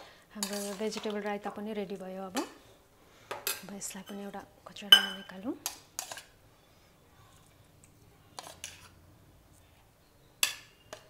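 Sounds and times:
spoon scraping metal bowl: 0.4 - 1.1
spoon tapping bowl: 4.9 - 5.3.

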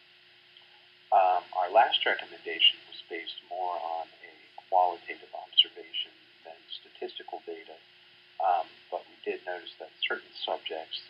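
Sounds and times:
faint steady hum: 0.0 - 11.0
person narrating: 1.1 - 7.8, 8.4 - 11.0.

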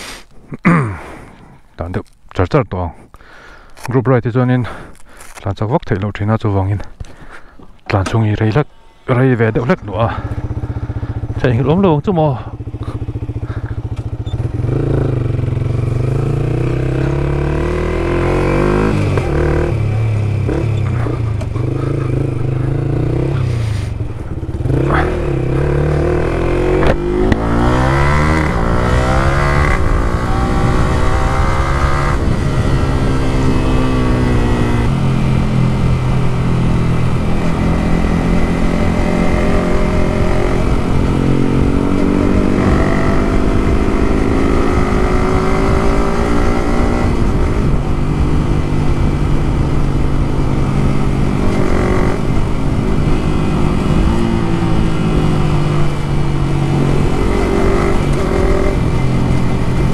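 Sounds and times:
road and wind noise: 0.0 - 59.9
motorcycle engine accelerating: 9.5 - 59.9.

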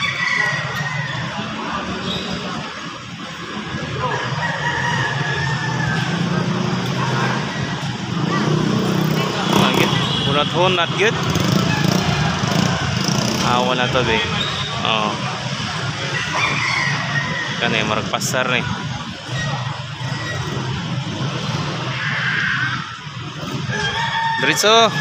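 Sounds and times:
small motorcycles running: 0.0 - 25.0
people talking: 0.8 - 11.8, 13.4 - 16.2, 17.4 - 19.8, 24.4 - 25.0.

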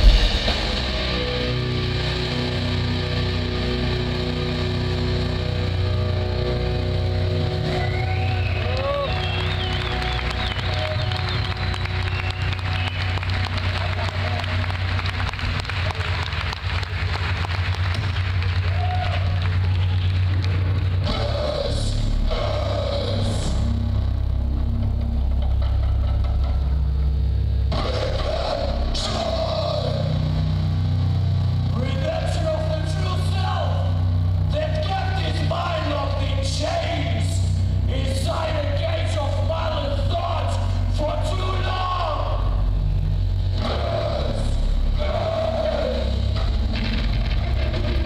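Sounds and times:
heavy distorted guitar and bass: 0.0 - 48.0.

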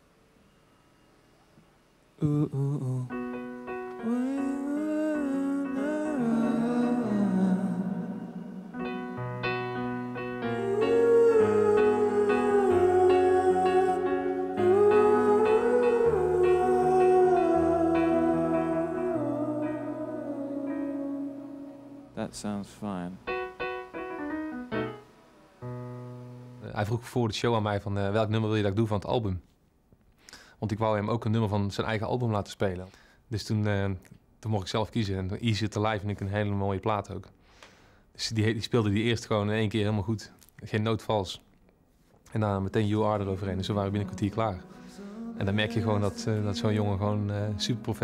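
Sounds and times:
man singing wordless melody: 2.2 - 9.2, 10.0 - 22.7, 42.8 - 48.0
grand piano chords: 2.2 - 26.8, 42.8 - 48.0.

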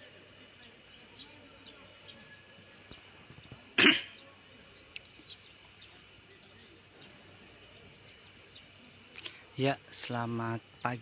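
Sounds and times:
faint open-air background: 0.0 - 11.0.

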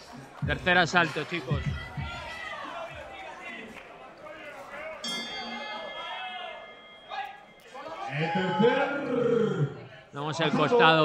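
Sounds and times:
loud shouting voices: 0.0 - 11.0
voices in a large hall: 0.0 - 11.0
ring bell struck: 5.0 - 8.0.

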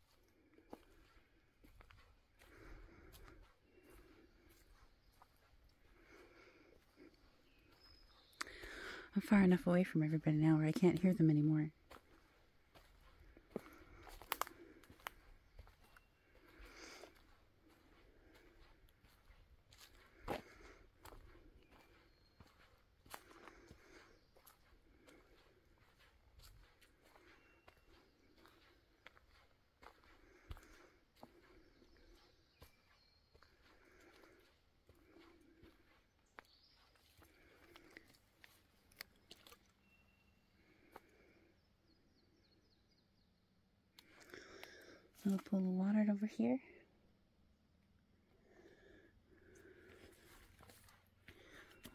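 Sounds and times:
footsteps on dirt trail: 0.0 - 41.4, 44.0 - 46.2, 49.4 - 51.9.

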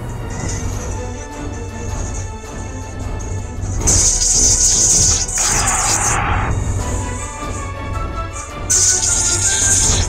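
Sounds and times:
game music with low beat: 0.0 - 10.0
loud high hissing effect: 3.8 - 6.5, 8.7 - 10.0.

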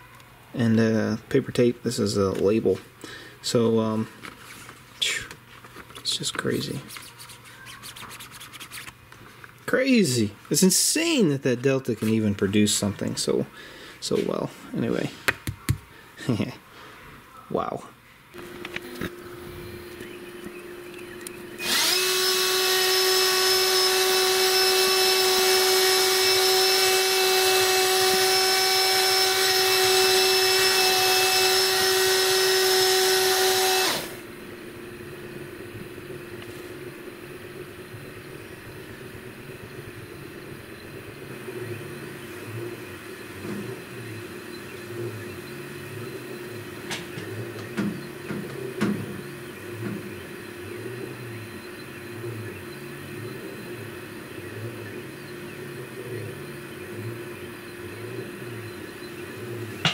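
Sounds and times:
loud motor whine: 18.4 - 59.9
stepper motors humming: 18.4 - 59.9.

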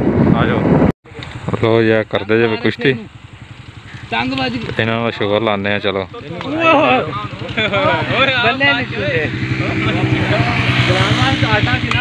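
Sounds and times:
men talking: 0.4 - 12.0
engine running: 1.1 - 12.0.

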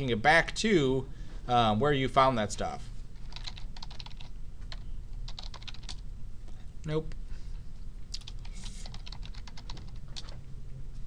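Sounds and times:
computer keyboard typing: 3.2 - 6.0, 8.2 - 10.4.

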